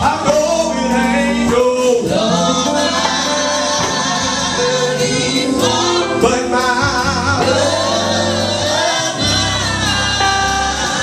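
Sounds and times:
gospel band playing: 0.0s - 11.0s
man singing into a microphone: 0.0s - 11.0s.

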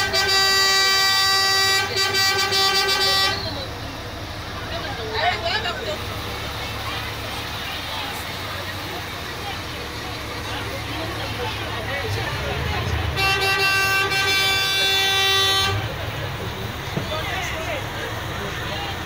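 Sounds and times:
vehicle horn blast: 0.0s - 3.7s, 13.0s - 16.0s
crowd voices: 0.0s - 19.0s
low engine rumble: 0.0s - 19.0s.

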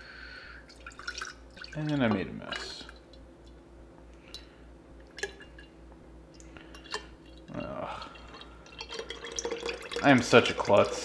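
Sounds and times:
fat pouring into glass jar: 7.6s - 11.0s.

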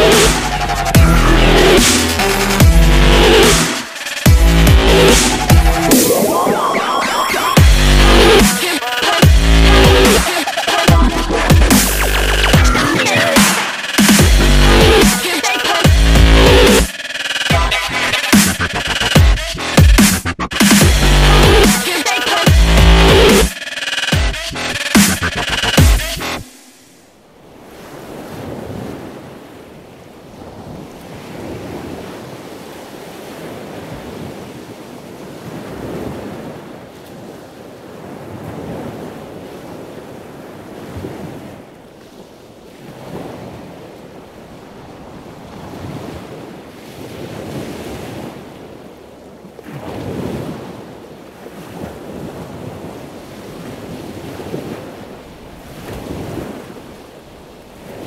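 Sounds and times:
waves washing in: 0.0s - 58.0s.

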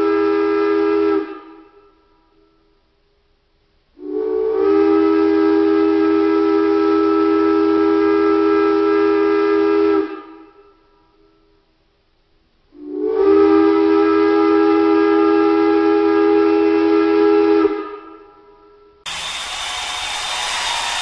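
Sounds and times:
steam locomotive whistle: 0.0s - 2.8s, 4.0s - 11.6s, 12.7s - 21.0s.

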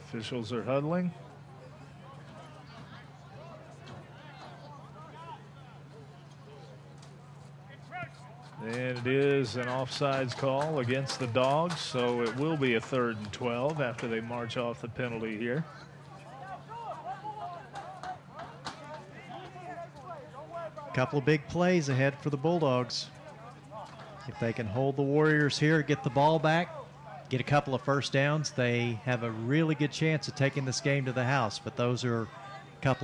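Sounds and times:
voices chattering and calling out: 0.0s - 33.0s.

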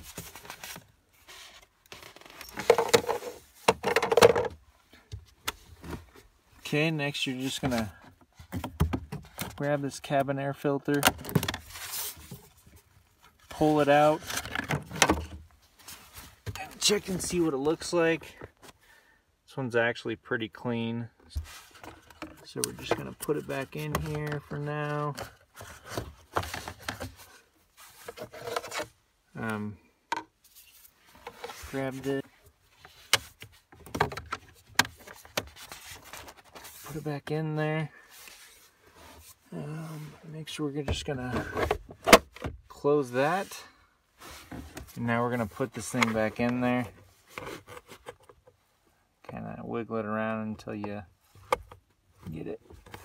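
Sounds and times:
plastic scraping and rustling: 0.0s - 4.6s, 10.9s - 18.7s, 21.3s - 29.0s, 30.5s - 37.1s, 44.2s - 48.6s
light rubbing and rustling: 21.3s - 29.0s, 30.4s - 37.1s.

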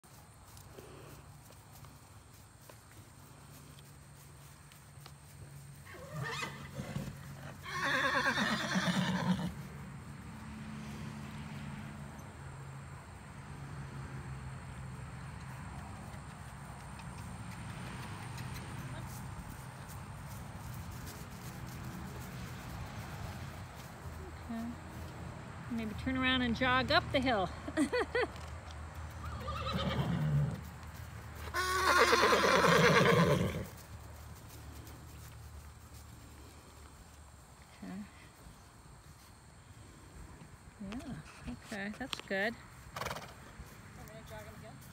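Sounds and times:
horse whinnying: 5.9s - 9.6s, 29.2s - 30.6s, 31.5s - 33.7s
faint horse call: 31.4s - 33.8s.

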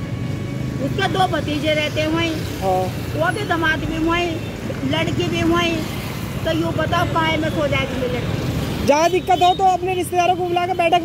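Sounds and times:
motorbikes: 0.0s - 11.0s
street traffic rumble: 0.0s - 11.0s
elderly woman talking: 0.8s - 8.3s, 8.9s - 11.0s.

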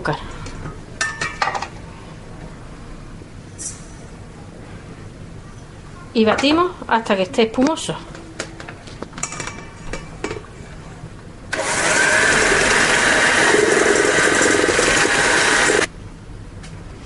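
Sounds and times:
electric hand mixer beating: 11.5s - 15.9s.

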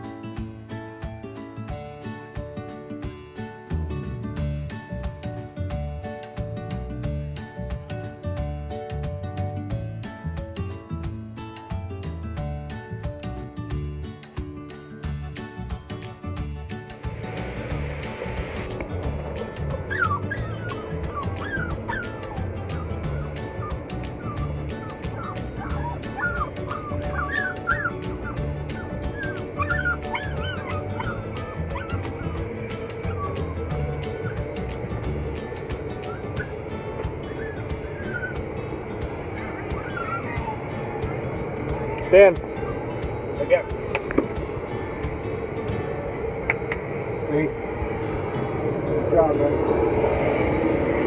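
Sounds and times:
background music with a beat: 0.0s - 46.9s
airplane cabin drone: 15.4s - 51.0s
dogs whining and yipping: 17.1s - 44.5s.

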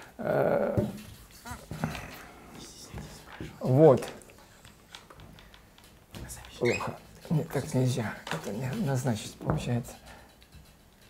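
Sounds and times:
eraser squeaks: 6.6s - 7.0s.

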